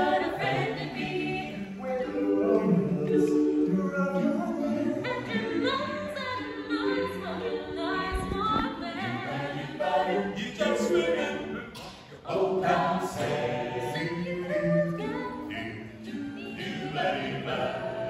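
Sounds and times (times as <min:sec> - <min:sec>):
a cappella choir singing: 0:00.0 - 0:18.0.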